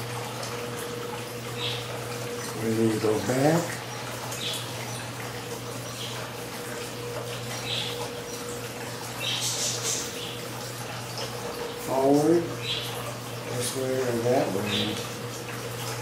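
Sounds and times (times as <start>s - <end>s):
low hum and hiss: 0.0s - 16.0s.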